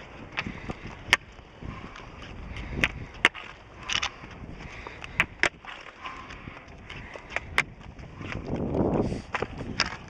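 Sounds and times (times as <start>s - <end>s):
pole tips clicking on pavement: 0.0s - 10.0s
roller ski wheels on asphalt: 0.0s - 10.0s.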